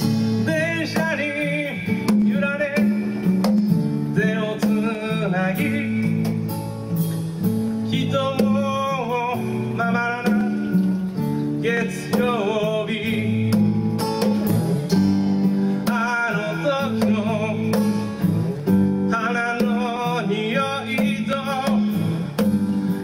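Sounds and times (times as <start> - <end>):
acoustic guitars playing chords: 0.0 - 23.0
drums and cymbals: 0.0 - 23.0.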